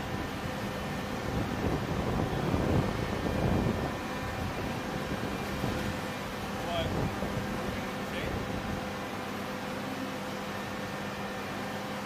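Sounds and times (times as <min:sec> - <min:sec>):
machinery hum: 0:00.0 - 0:12.0.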